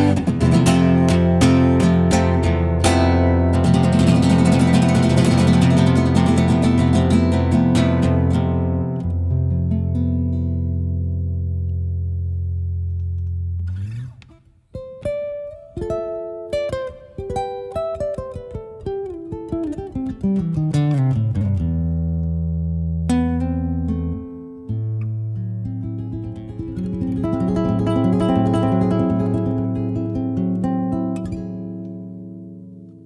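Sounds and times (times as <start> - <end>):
classical guitar strummed chords: 0.0 - 33.0
picked guitar melody: 0.0 - 33.0.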